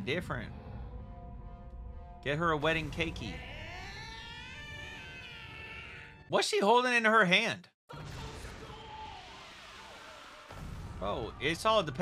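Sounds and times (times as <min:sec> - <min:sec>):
high wailing scream: 0:03.2 - 0:06.2, 0:08.2 - 0:10.6.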